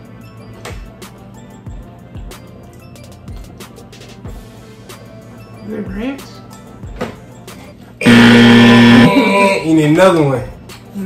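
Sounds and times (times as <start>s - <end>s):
wrong-answer buzz: 8.0s - 9.7s.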